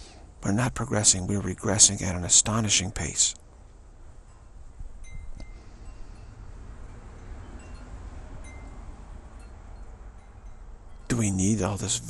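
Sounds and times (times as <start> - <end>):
faint high ringing tones: 4.1 - 12.0.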